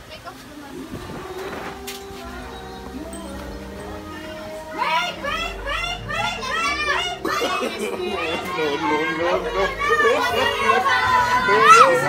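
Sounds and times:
children calling out: 0.0s - 12.0s.

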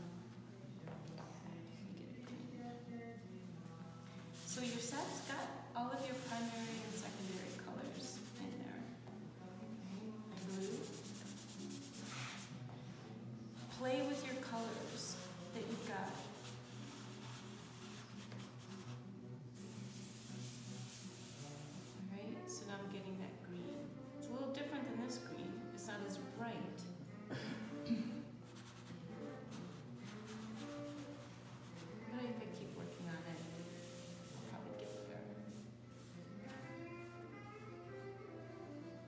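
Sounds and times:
faint background music: 0.0s - 39.0s
pastel stick rubbing on paper: 4.4s - 8.6s, 10.3s - 12.6s, 13.6s - 22.0s, 28.4s - 36.8s.

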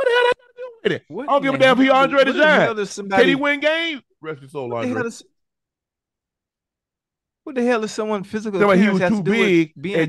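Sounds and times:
man speaking: 0.0s - 5.3s, 7.5s - 10.0s.

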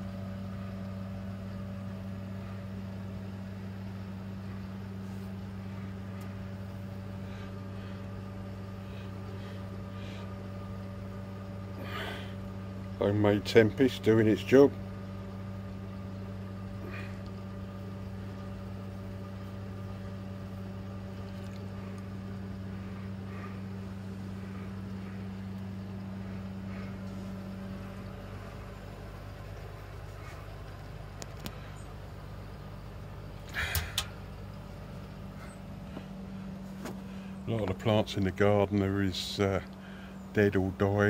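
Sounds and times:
pond filter electric hum: 0.0s - 41.0s.

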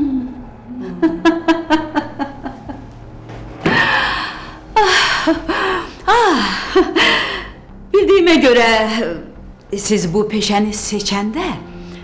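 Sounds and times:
woman laughing: 0.7s - 2.9s.

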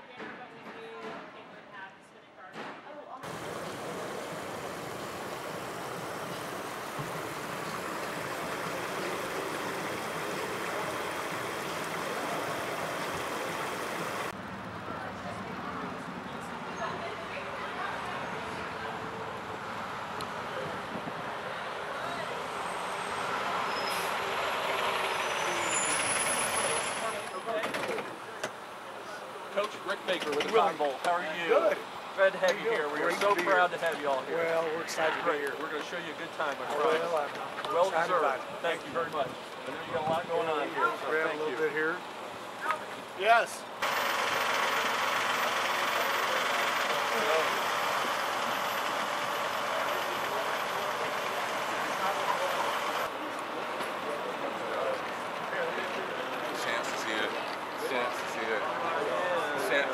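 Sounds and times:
coach pulling up: 3.2s - 14.4s, 40.9s - 59.7s
fan noise: 3.2s - 14.8s
bus engine idling: 3.2s - 30.2s, 41.0s - 59.9s
faint voices: 3.2s - 59.9s.

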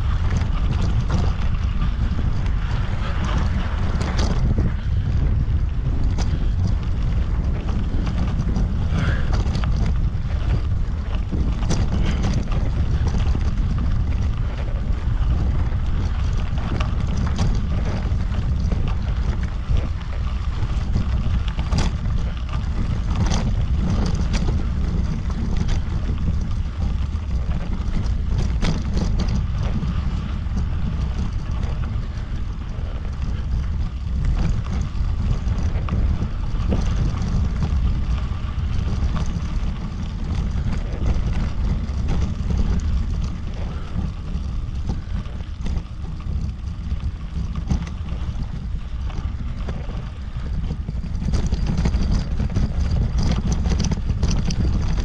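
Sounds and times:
tyres crackling on grit: 0.0s - 55.0s
wind buffeting microphone: 0.0s - 55.0s.

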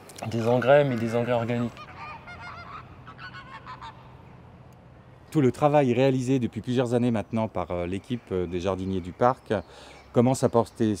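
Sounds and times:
geese honking: 0.2s - 4.5s.

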